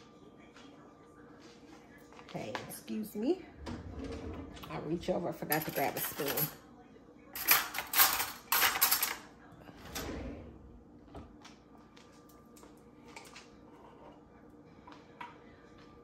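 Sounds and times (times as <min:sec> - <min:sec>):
metal cutlery clattering: 0:05.5 - 0:06.6, 0:07.4 - 0:09.3.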